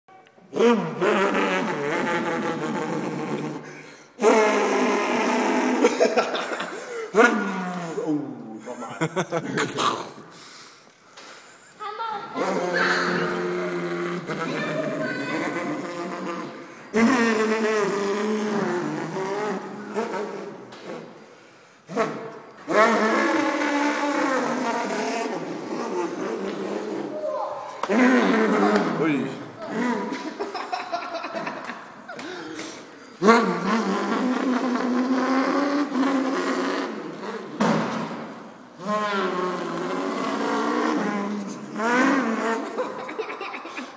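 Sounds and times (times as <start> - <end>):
buzzing two-stroke engine sound: 12.4 - 21.2, 21.9 - 27.2, 33.2 - 43.4.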